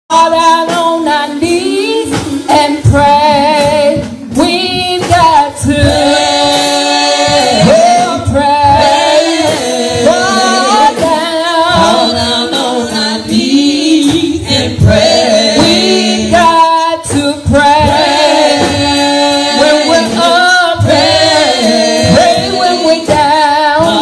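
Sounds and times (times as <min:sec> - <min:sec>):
women singing gospel song: 0:00.1 - 0:24.0.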